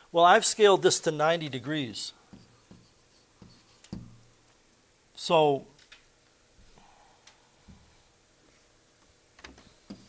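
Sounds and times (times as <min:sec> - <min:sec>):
pen tapping on whiteboard: 0:02.3 - 0:04.2.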